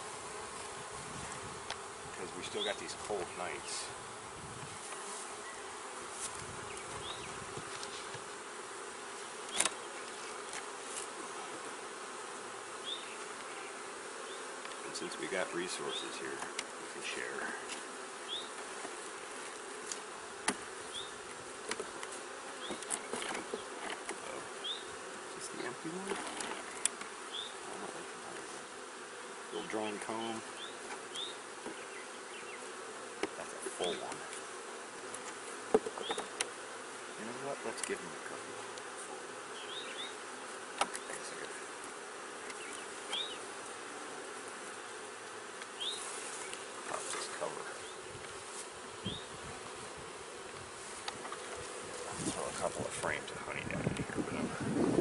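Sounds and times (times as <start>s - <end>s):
bees buzzing: 0.0s - 55.0s.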